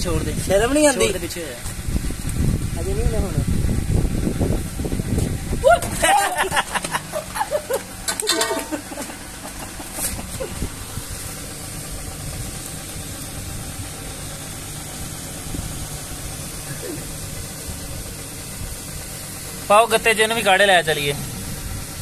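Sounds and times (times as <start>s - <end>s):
motor idling: 0.0s - 22.0s.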